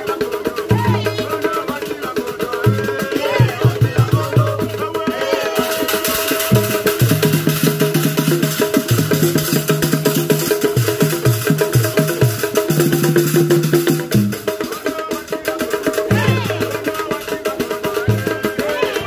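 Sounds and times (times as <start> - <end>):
hand drums: 0.0 - 19.0.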